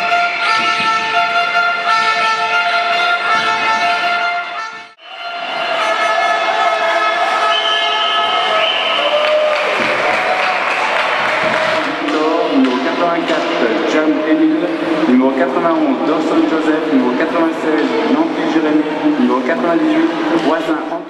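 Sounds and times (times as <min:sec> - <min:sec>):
horn-like pitched tones: 0:00.0 - 0:09.1
man speaking over public address: 0:11.8 - 0:21.0.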